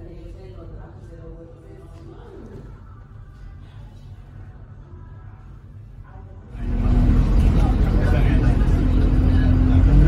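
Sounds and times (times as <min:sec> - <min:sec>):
bus engine and road rumble: 0:06.6 - 0:10.0.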